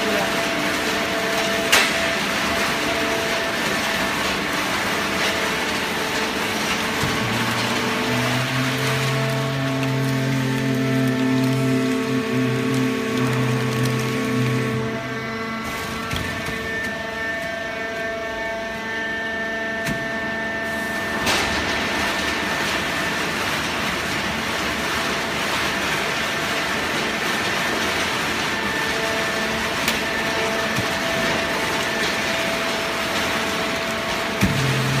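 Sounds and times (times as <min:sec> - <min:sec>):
baler hum and whine: 0:00.6 - 0:35.0.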